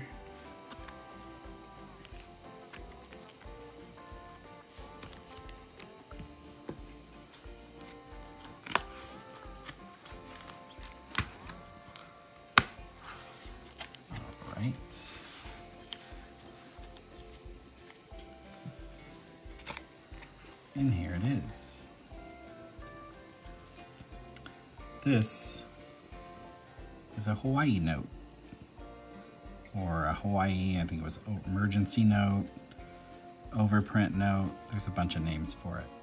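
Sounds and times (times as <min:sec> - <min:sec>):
background music: 0:00.0 - 0:36.0
cardboard and plastic rustling: 0:04.7 - 0:21.6
scissors cutting cardboard: 0:07.8 - 0:14.0.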